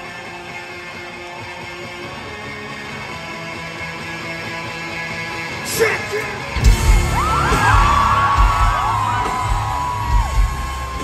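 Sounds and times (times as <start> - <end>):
rock band playing live: 0.0 - 11.0
crowd whooping: 6.6 - 11.0.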